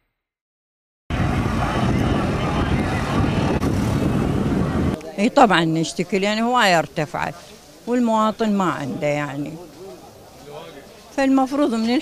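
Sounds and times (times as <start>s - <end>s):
crowd voices: 1.1s - 12.0s
road traffic: 1.1s - 12.0s.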